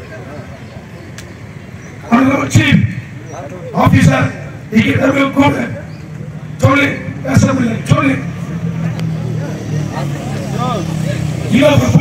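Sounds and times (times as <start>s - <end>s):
vehicle engine running: 0.0s - 12.0s
man speaking: 2.1s - 5.9s, 6.6s - 8.4s, 9.9s - 12.0s.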